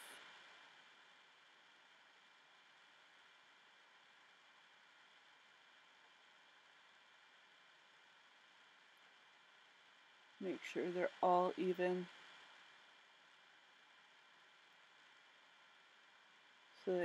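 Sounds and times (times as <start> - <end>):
faint steady hiss: 0.0 - 17.0.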